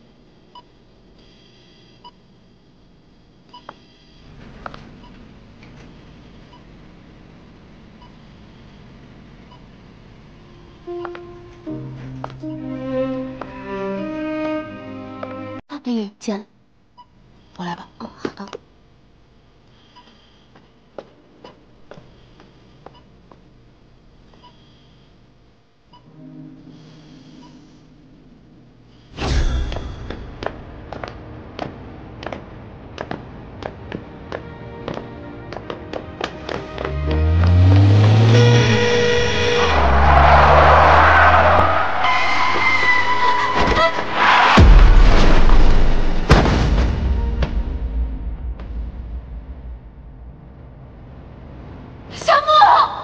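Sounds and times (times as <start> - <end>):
patient monitor beeping: 10.5 - 12.2.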